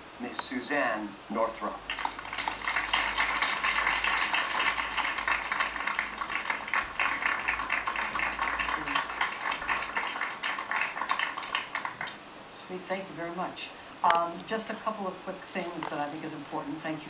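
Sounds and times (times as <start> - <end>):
studio audience applauding: 1.7 - 12.2, 15.5 - 16.8.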